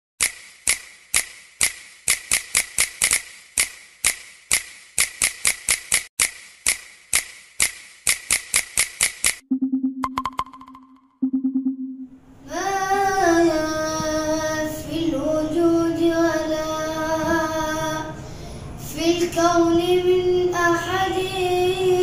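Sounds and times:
sharp bright percussion clicks: 0:00.2 - 0:09.4, 0:10.0 - 0:11.1.

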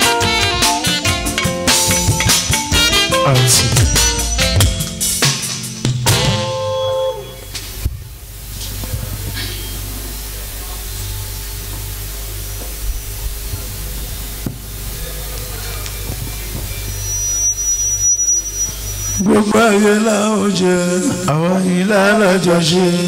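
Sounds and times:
high whistle: 0:00.0 - 0:05.3, 0:06.1 - 0:07.8, 0:15.6 - 0:20.3
pa system hum and hiss: 0:00.0 - 0:23.0.

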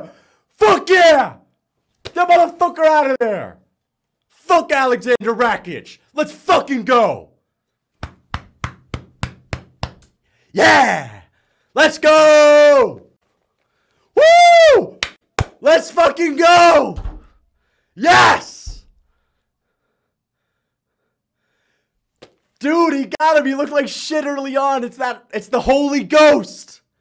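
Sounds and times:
hand knocking: 0:08.0 - 0:10.1.

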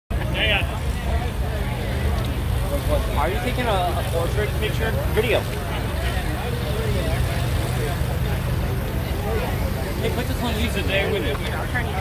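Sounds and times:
crowd voices: 0:00.1 - 0:12.0
locomotive idling rumble: 0:00.1 - 0:12.0.

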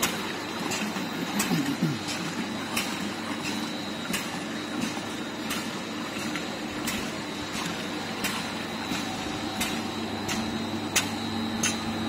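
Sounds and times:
machine running with faint hum: 0:00.0 - 0:12.0.

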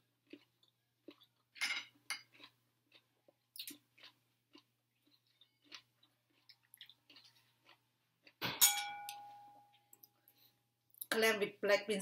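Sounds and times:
chewing: 0:00.2 - 0:01.6, 0:02.2 - 0:08.4
fork clinking on a plate: 0:08.5 - 0:09.5.

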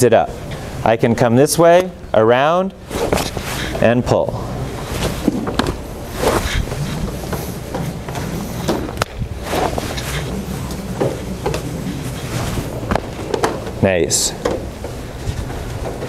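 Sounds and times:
steady low hum: 0:00.0 - 0:16.0
ropes swishing: 0:02.8 - 0:03.9, 0:04.6 - 0:16.0.

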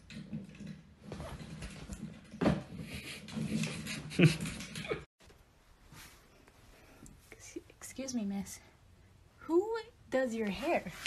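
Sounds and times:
faint whispering: 0:07.0 - 0:08.7.

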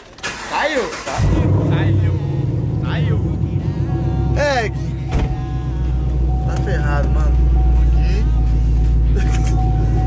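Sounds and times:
car engine idling: 0:00.2 - 0:10.0.

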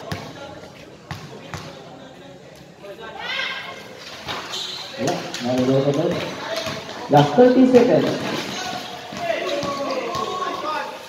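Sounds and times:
basketball bouncing on concrete: 0:01.1 - 0:01.8, 0:05.0 - 0:07.4, 0:08.0 - 0:10.6.

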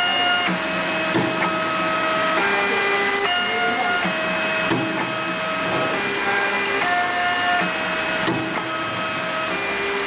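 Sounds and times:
feed motors whining: 0:00.0 - 0:10.0.

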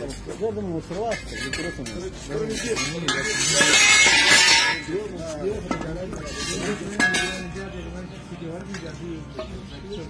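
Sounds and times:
metal bars clinking: 0:00.0 - 0:07.7
voices talking in background: 0:00.0 - 0:10.0.

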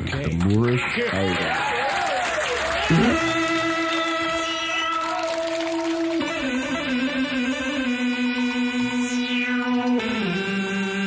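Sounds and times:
synthesizer swooping in pitch: 0:02.9 - 0:11.0.

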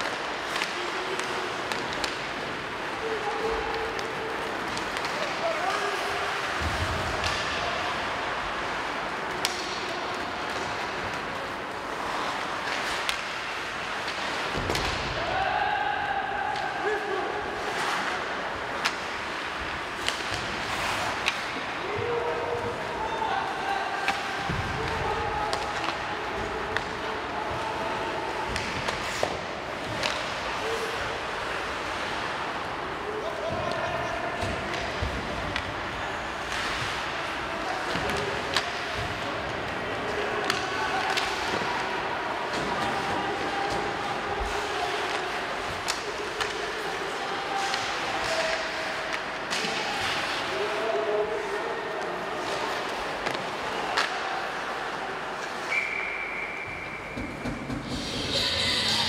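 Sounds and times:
whistle blast: 0:55.7 - 0:57.2
indistinct shouting voices: 0:57.9 - 0:59.0.

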